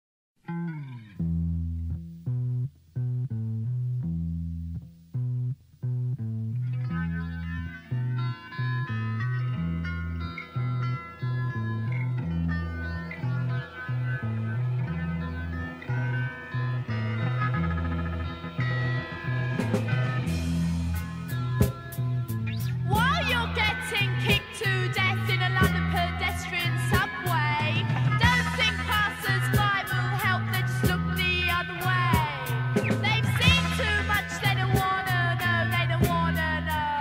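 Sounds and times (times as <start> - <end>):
bass guitar riff: 0.4 - 37.0
electric guitar through effects: 0.4 - 37.0.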